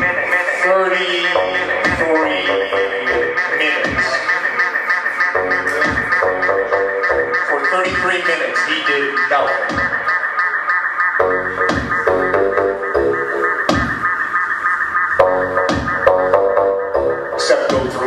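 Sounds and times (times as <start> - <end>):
fast repeating synthesizer pattern: 0.0 - 18.0
deep notes sliding downward: 1.4 - 7.6, 9.2 - 17.5.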